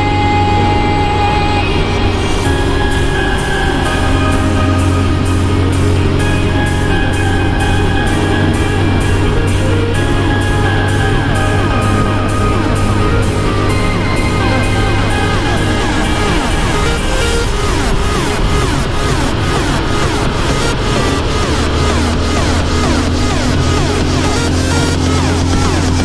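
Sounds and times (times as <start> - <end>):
background music with steady beat: 0.0 - 26.0.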